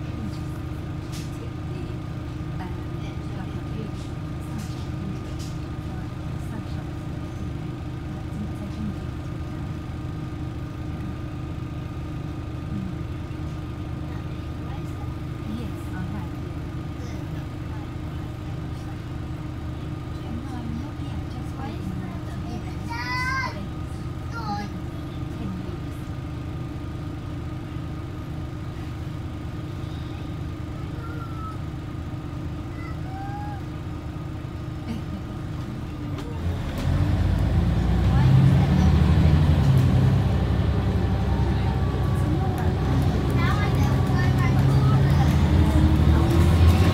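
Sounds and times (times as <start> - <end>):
bus engine and road drone: 0.0 - 46.9
constant hum: 0.0 - 46.9.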